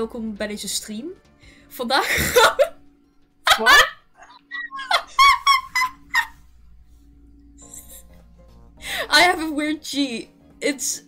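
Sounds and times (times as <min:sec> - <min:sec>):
high-pitched squeaky giggling: 0:04.2 - 0:05.9.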